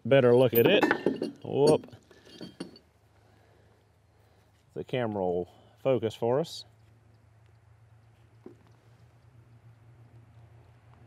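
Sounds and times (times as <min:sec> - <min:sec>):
faint metal clinks: 0:00.1 - 0:03.0.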